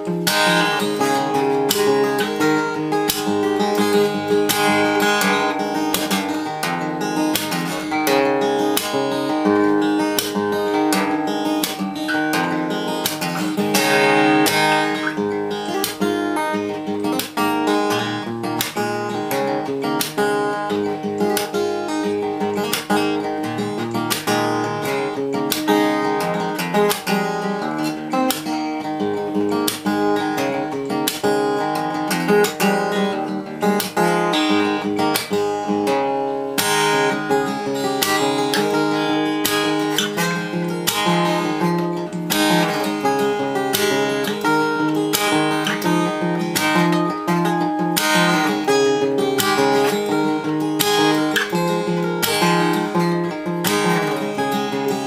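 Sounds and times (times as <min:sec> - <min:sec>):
fingerstyle acoustic guitar: 0:00.0 - 0:55.0.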